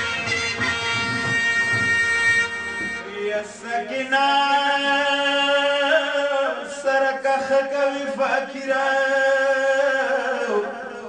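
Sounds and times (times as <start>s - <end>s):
man chanting a lament: 3.0s - 11.0s.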